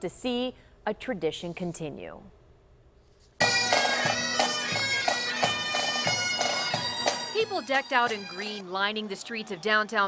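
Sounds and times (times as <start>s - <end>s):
bagpipes playing a march: 3.4s - 8.7s
drum beats: 3.4s - 10.0s.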